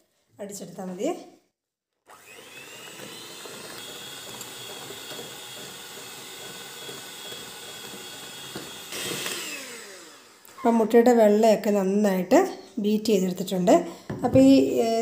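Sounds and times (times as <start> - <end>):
electric hand mixer beating batter: 2.1 - 10.6.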